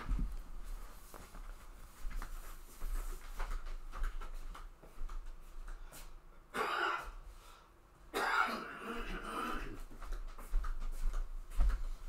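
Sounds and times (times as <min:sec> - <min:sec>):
man clearing his throat: 0:06.5 - 0:07.2, 0:08.1 - 0:09.9.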